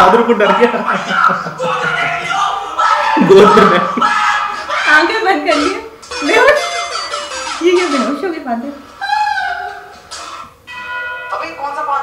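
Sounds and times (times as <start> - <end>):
bell-like tone ringing: 10.7 - 11.8.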